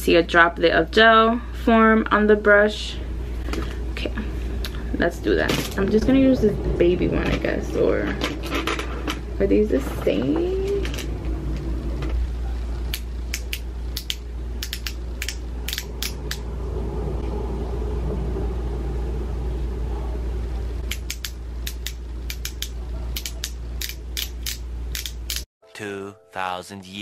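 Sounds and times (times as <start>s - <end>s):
low hum: 0.0s - 25.4s
pen base clicking: 12.9s - 16.4s, 20.9s - 25.4s.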